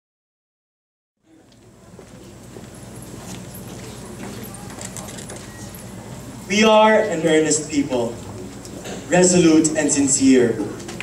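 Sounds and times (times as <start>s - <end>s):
audience murmur: 1.2s - 11.0s
steady low hum: 1.2s - 11.0s.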